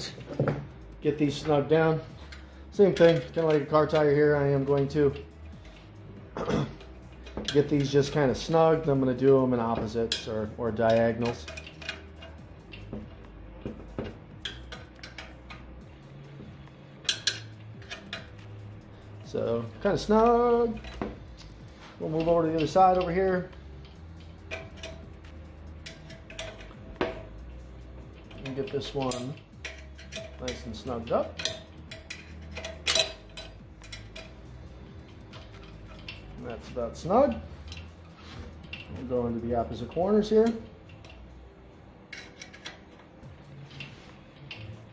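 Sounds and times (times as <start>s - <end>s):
metal hand tool clinking on nuts: 1.2s - 6.0s, 6.6s - 41.4s.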